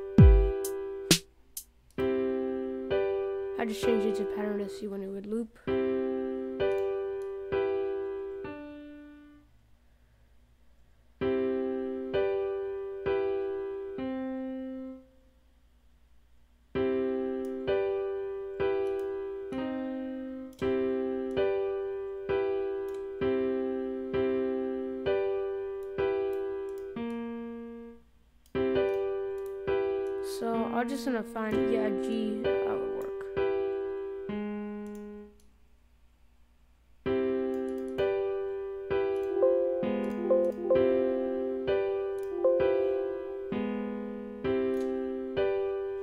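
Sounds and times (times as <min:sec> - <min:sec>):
piano chords repeating: 0:00.0 - 0:01.2, 0:37.9 - 0:46.0.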